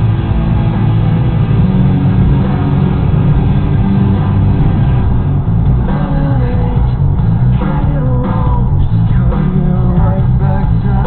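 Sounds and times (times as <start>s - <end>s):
car low rumble: 0.0s - 11.0s
rock music on car radio: 0.0s - 11.0s.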